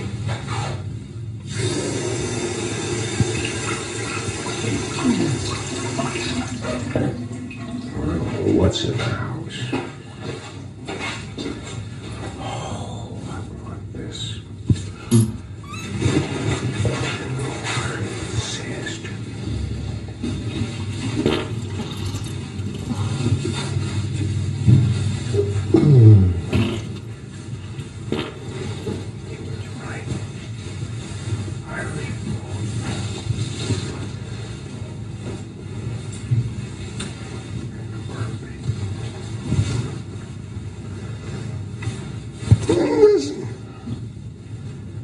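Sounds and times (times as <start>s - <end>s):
rumble and hiss: 0.0s - 45.0s
man muttering: 25.5s - 26.9s.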